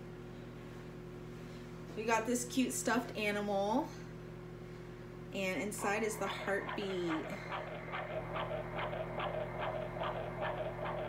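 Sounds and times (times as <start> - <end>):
steady low hum: 0.0 - 11.0
fast ultrasound heartbeat: 5.7 - 11.0.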